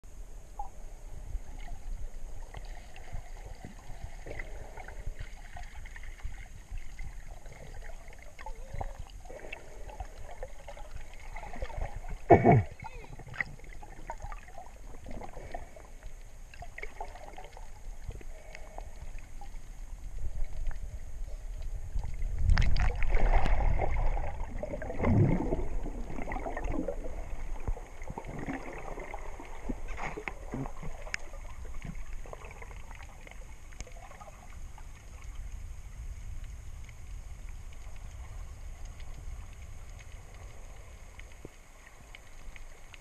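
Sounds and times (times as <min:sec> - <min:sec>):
low underwater rumble: 0:00.0 - 0:43.0
water rushing and gurgling: 0:00.1 - 0:43.0
small clicks and crackles: 0:01.4 - 0:24.8, 0:25.9 - 0:43.0.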